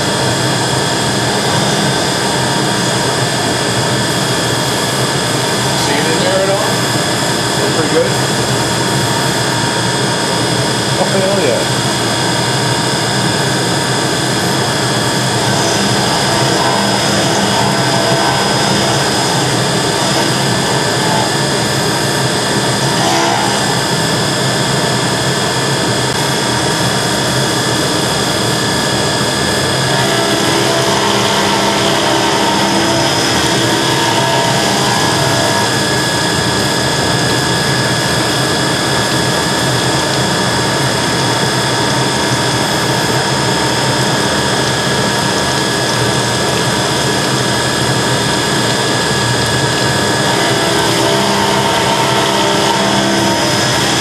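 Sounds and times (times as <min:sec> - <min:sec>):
milling machine cutting steel: 0:00.0 - 0:54.0.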